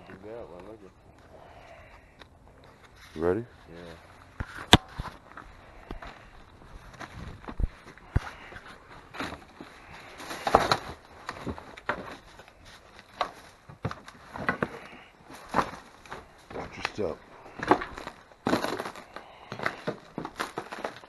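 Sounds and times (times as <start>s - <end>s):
footsteps on loose debris: 2.6s - 21.0s
boards knocking and scraping: 13.1s - 21.0s.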